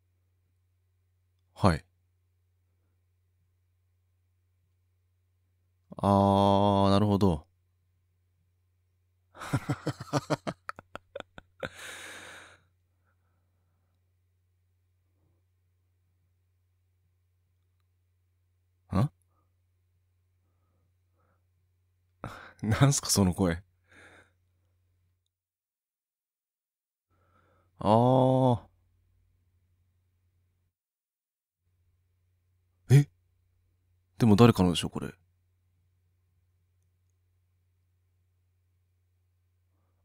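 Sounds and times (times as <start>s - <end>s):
faint low hum: 0.0s - 22.9s
person sighing: 11.1s - 12.7s.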